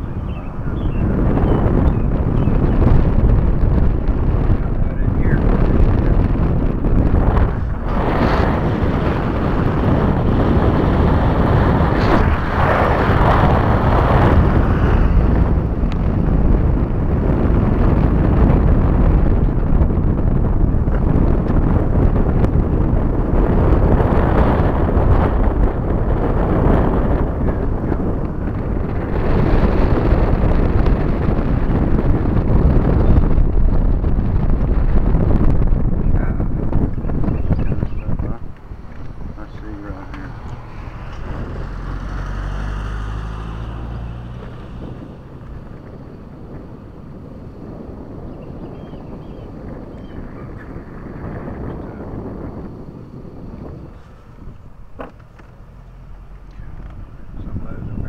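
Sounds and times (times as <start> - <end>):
road and engine noise: 0.0 - 58.0
wind buffeting microphone: 0.0 - 58.0.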